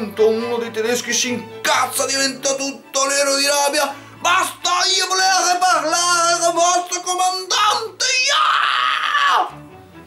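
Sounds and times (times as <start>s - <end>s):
background music: 0.0s - 10.0s
man yelling angrily: 3.5s - 9.6s.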